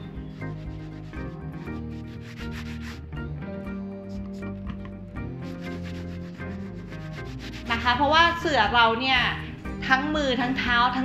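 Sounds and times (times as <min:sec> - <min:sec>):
background music with held notes: 0:00.0 - 0:11.0
cloth rubbing on yoga mat: 0:00.2 - 0:03.1, 0:05.4 - 0:08.1.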